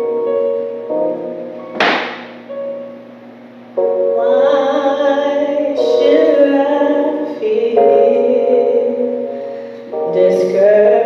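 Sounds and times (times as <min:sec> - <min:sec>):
sustained keyboard chords: 0:00.0 - 0:11.0
sudden hit: 0:01.7 - 0:02.5.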